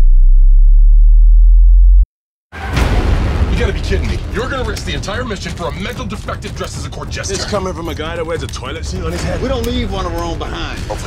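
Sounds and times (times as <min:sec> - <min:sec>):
deep sub-bass tone: 0:00.0 - 0:02.1.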